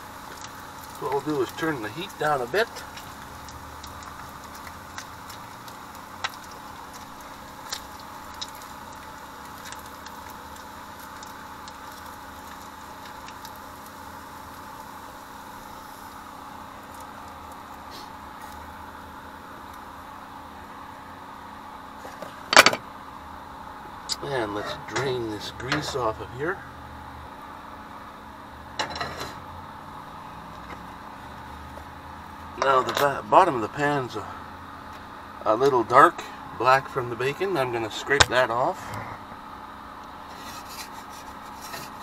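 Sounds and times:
bacon sizzling in a frying pan: 0.0s - 24.2s.

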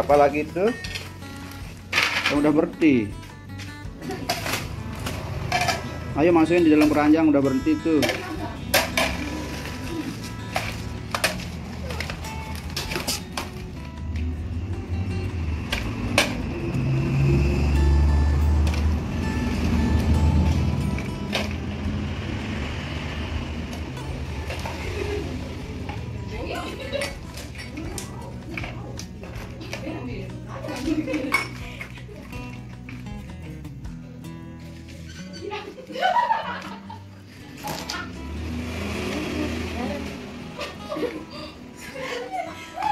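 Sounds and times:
background music: 0.0s - 42.9s
toy dishes clinking and clattering: 5.4s - 6.0s, 30.7s - 32.0s.

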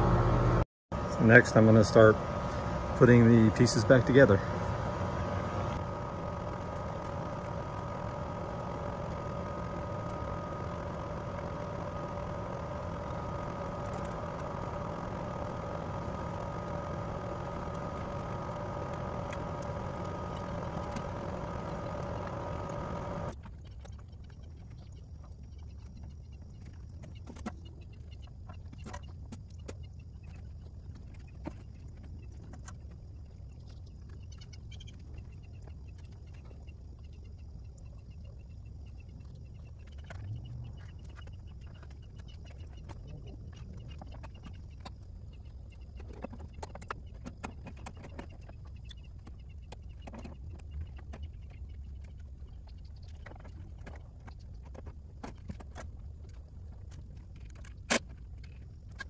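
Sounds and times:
air conditioner unit humming: 0.0s - 23.3s.

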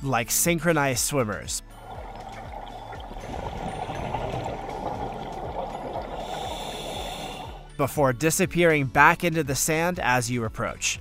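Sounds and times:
fine underwater crackling: 1.8s - 7.6s
underwater rush of water: 1.8s - 7.7s.

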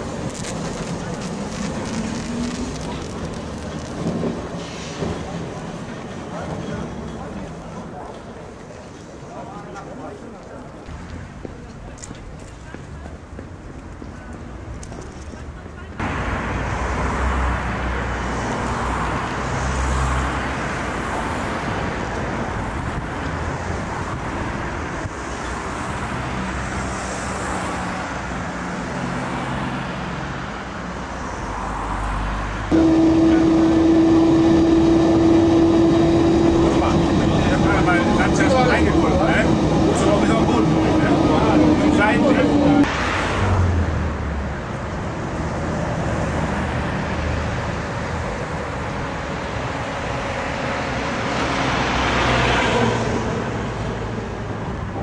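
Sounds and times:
street traffic rumble: 0.0s - 55.0s
tram running noise: 0.0s - 55.0s
tram motor whine: 32.7s - 42.9s.

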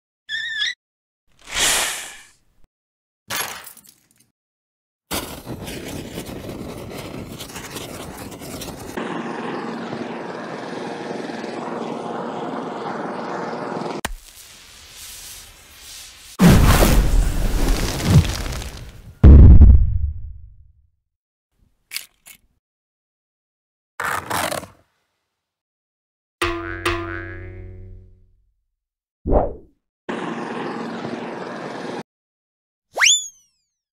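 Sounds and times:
helicopter rotor and engine: 8.5s - 14.0s, 30.1s - 32.0s
cartoon boing: 26.4s - 28.2s.

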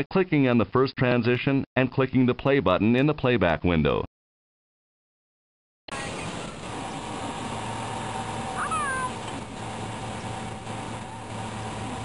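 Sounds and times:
short falling cry: 8.6s - 9.2s.

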